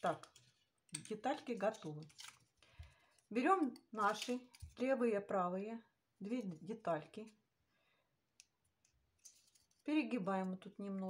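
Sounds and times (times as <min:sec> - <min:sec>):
plastic crinkling rustle: 0:01.6 - 0:03.3.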